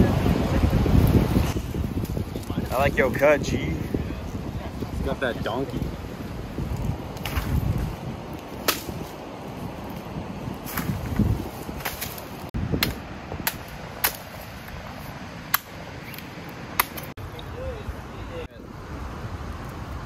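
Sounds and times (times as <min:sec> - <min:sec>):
machete chopping coconut husk: 0:08.6 - 0:09.0, 0:11.8 - 0:14.4, 0:15.5 - 0:17.1.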